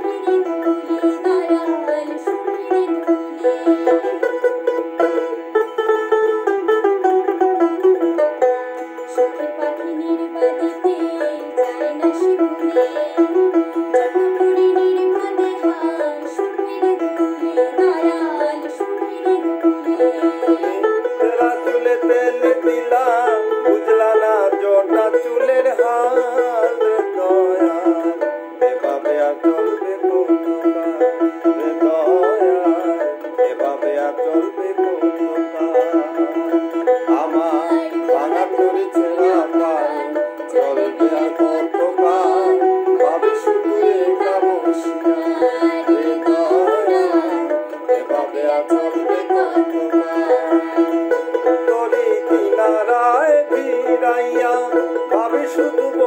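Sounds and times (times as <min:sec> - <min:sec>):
man and woman singing duet: 0:00.0 - 0:05.5, 0:09.0 - 0:56.0
plucked lute melody: 0:00.0 - 0:56.0.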